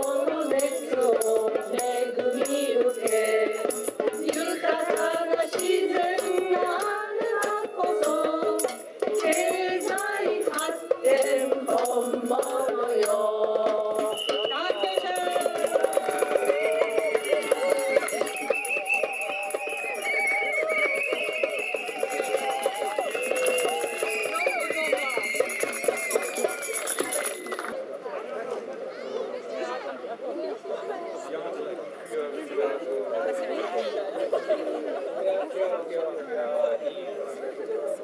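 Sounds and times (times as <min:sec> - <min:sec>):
voices singing together: 0:00.0 - 0:26.8
rhythmic percussive clicks: 0:00.0 - 0:27.8
group of people chattering: 0:00.0 - 0:38.0.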